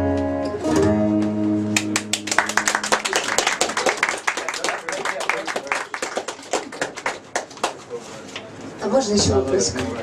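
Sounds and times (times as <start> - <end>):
audience clapping: 1.7 - 8.0.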